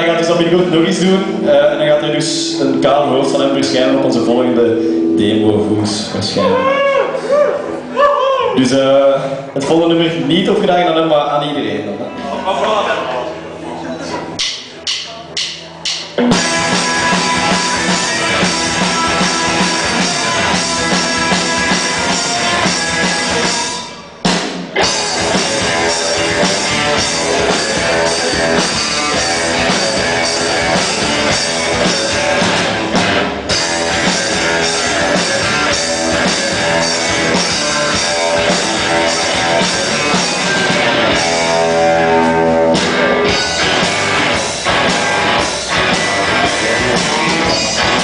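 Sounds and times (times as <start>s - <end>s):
bass guitar: 0.0s - 8.0s, 15.3s - 48.0s
electric guitars: 0.0s - 8.0s, 16.2s - 48.0s
rock band playing loudly: 0.0s - 8.0s, 14.2s - 48.0s
drum kit beat: 0.4s - 6.8s, 14.4s - 48.0s
drumstick count-in ticks: 14.4s - 16.5s.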